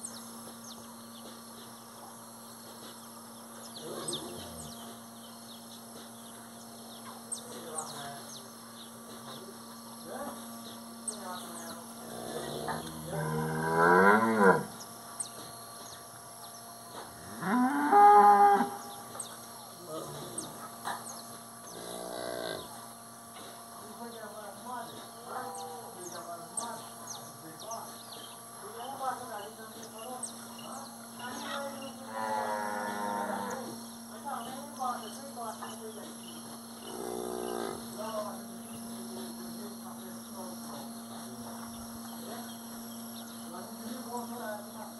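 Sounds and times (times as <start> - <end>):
cattle mooing: 12.0 - 14.8, 17.2 - 18.8, 21.7 - 22.7, 32.0 - 33.8, 36.9 - 38.0.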